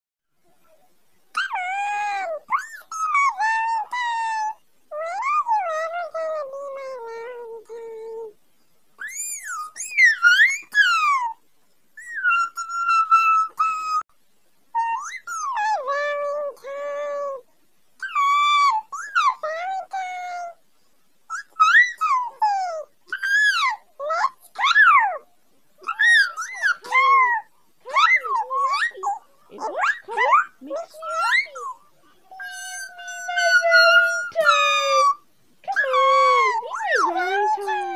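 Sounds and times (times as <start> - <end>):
electronic toy warbling voice: 25.8 - 37.9.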